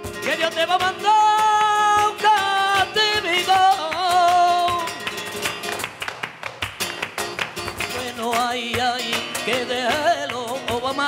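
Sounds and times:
person singing: 0.0s - 5.0s, 7.9s - 11.0s
flamenco acoustic guitar: 0.0s - 11.0s.

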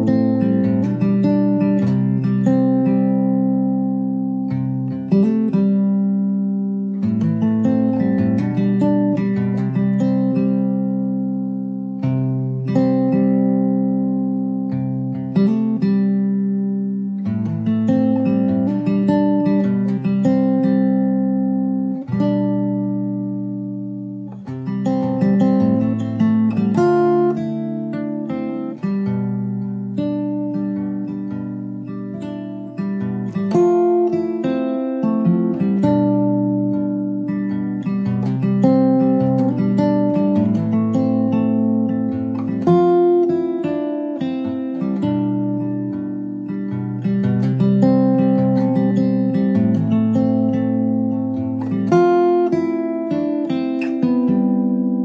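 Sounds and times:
guitar plucked notes and chords: 0.0s - 55.0s.

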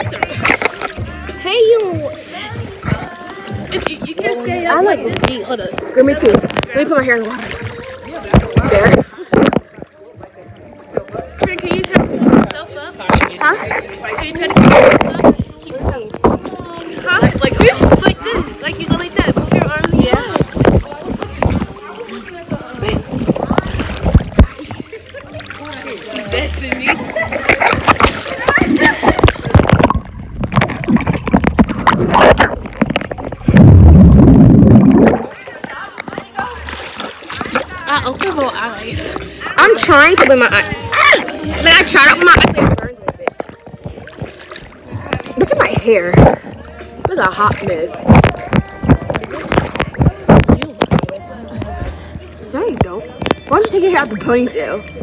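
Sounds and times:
pool water sloshing and splashing: 0.0s - 55.0s
underwater air bubbles rushing: 19.2s - 25.6s, 27.1s - 37.8s
voices talking: 34.4s - 55.0s.

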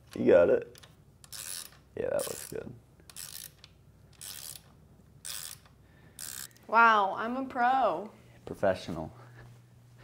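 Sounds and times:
socket ratchet clicking: 0.0s - 6.6s.

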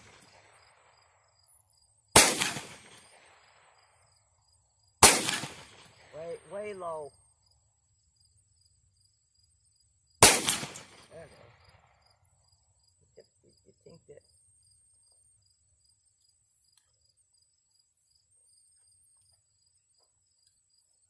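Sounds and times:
insects buzzing: 0.0s - 21.0s
handgun shot echoing: 2.2s - 3.3s, 5.0s - 6.1s, 10.2s - 11.2s.

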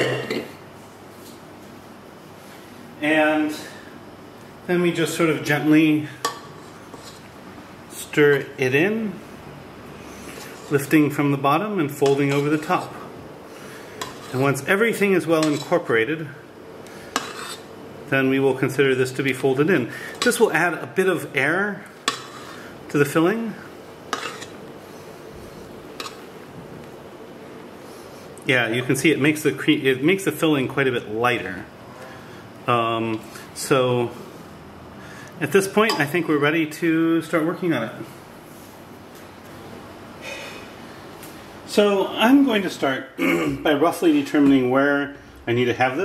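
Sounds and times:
spatula scraping metal bowl: 6.5s - 7.3s, 10.3s - 10.9s, 14.0s - 14.7s, 15.4s - 15.9s, 17.0s - 17.7s, 22.0s - 22.7s, 24.1s - 24.6s.

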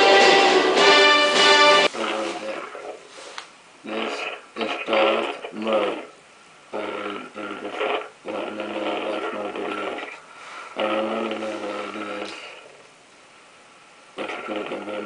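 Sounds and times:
distorted voice through voice changer: 1.8s - 3.1s, 3.8s - 12.8s, 14.2s - 15.0s.

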